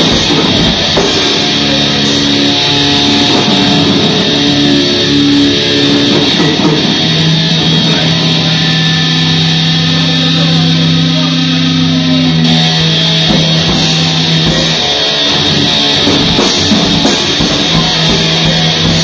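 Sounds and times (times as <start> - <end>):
distorted electric guitar metal: 0.0 - 19.0.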